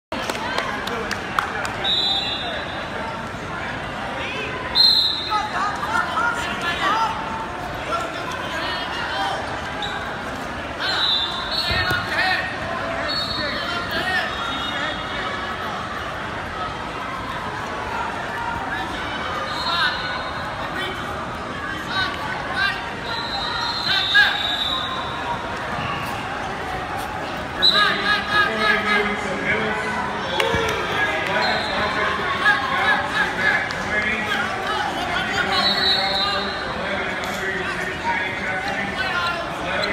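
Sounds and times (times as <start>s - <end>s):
spectators shouting and chatting: 0.1s - 39.9s.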